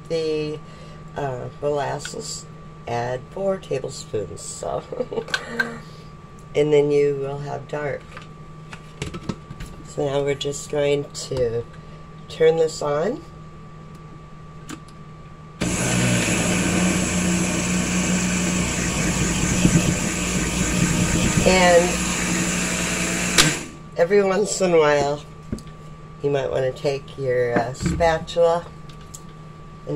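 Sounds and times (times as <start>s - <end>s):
faint steady hum: 0.0s - 15.6s
electric blender running: 15.6s - 23.8s
blender switch click: 23.2s - 23.7s.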